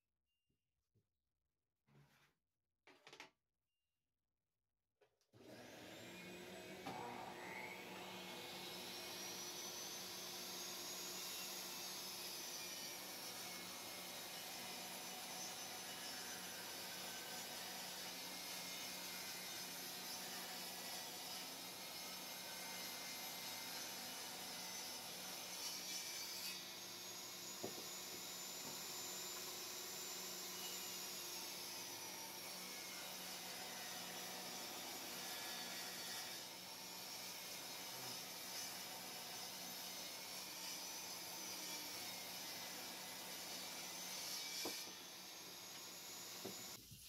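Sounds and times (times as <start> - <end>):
table saw ripping wood: 22.7 - 32.5, 40.3 - 46.8.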